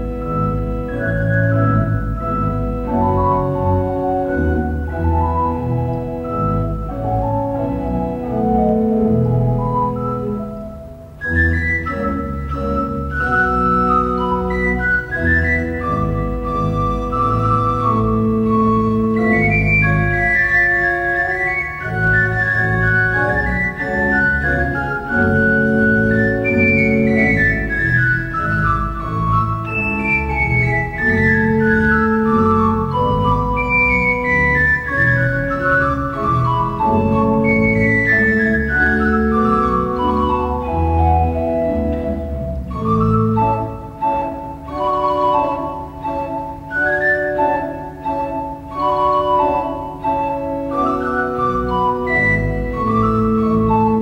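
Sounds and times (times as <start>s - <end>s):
organ playing classical piece: 0.0s - 54.0s.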